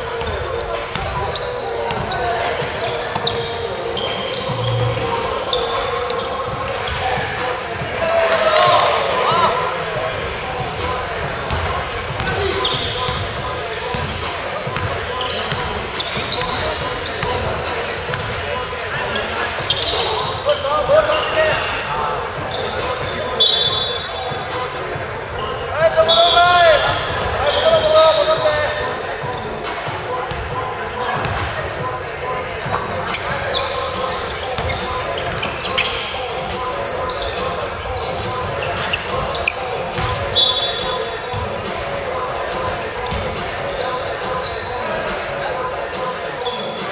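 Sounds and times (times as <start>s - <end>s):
players calling out: 0.0s - 46.9s.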